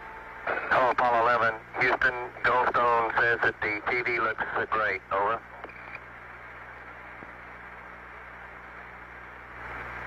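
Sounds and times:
man speaking over radio: 0.5 - 5.6.

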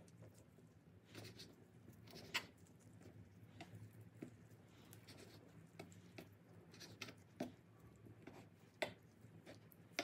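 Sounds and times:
knife scraping: 1.1 - 2.8, 4.9 - 7.5.

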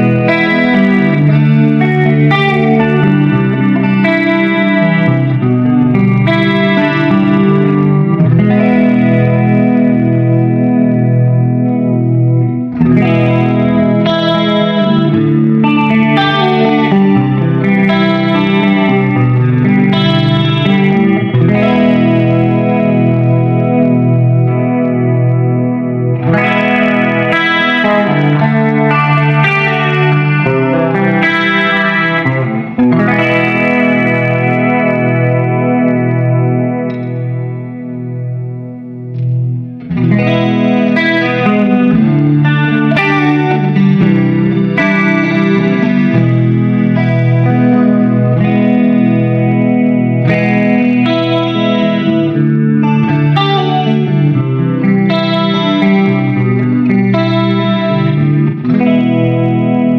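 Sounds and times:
electric guitar chords: 0.0 - 59.9.

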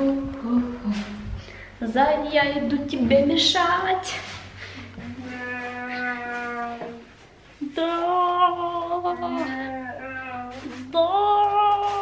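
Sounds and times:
long held vocal notes: 0.0 - 1.2.

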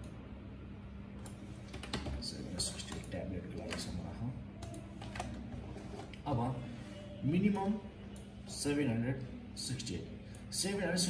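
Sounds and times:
steady low hum: 0.0 - 11.0
keyboard typing: 1.2 - 6.2.

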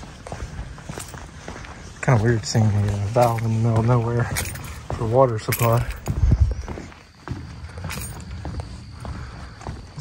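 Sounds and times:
footsteps on boardwalk decking: 0.0 - 10.0.

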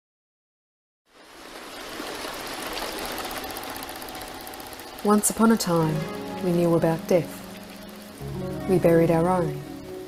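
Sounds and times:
rain hiss: 1.1 - 10.0.

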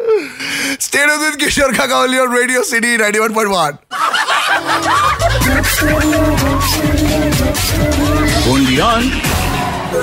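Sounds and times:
recorded laughter: 3.9 - 6.7
upbeat music with bass line: 4.6 - 10.0.

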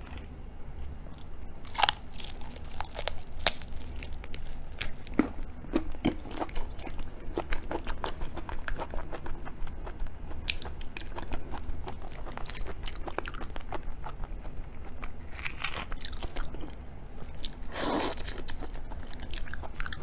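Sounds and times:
chewing and biting raw shrimp: 1.6 - 16.8.

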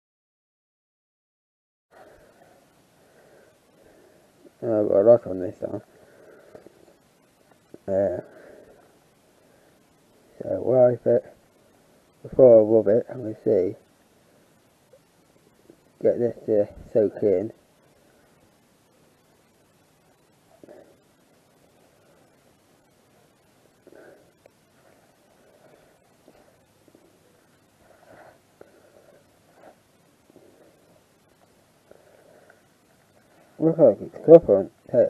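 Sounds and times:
faint ticks: 6.4 - 7.9.

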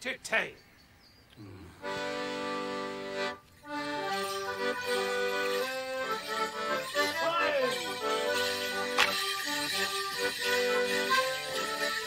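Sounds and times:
accordion playing: 1.8 - 12.0.

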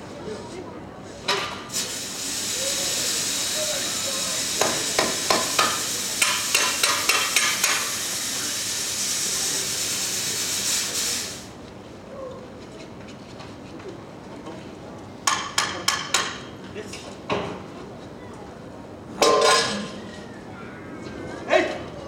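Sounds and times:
loud hiss of rushing gas: 1.4 - 11.6.

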